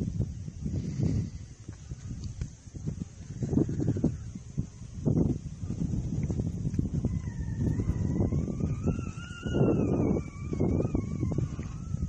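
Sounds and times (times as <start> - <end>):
wind buffeting microphone: 0.0 - 12.0
faint wavering tone: 6.9 - 12.0.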